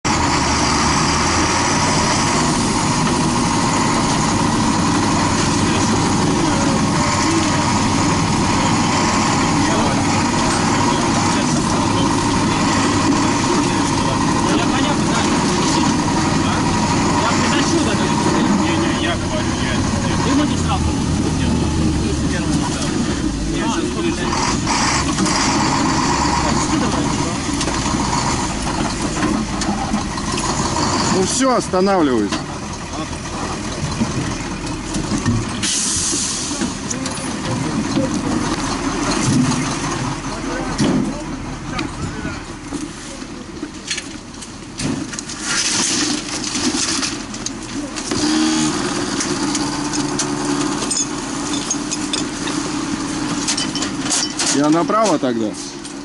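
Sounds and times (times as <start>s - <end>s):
fire engine driving: 0.0s - 56.0s.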